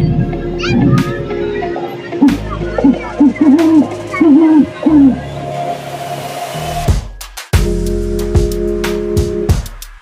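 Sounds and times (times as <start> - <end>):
low droning music: 0.0 - 7.0
spooky hooting calls: 1.2 - 6.6.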